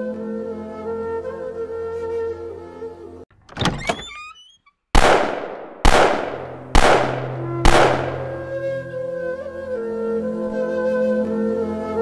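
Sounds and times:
loud booming thuds: 5.0s - 8.6s
soft music: 7.1s - 12.0s.

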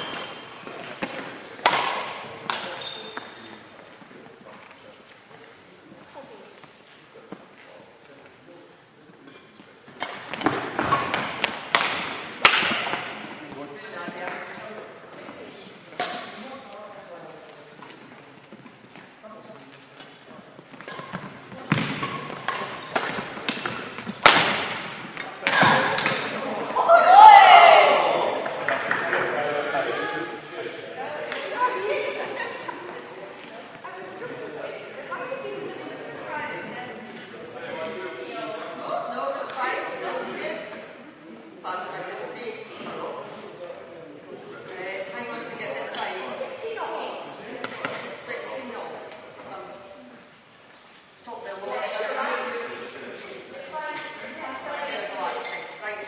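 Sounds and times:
rackets hitting shuttlecock: 0.0s - 3.3s, 10.0s - 13.2s, 15.9s - 16.4s, 20.8s - 26.5s
people talking in echoing hall: 0.0s - 56.0s.

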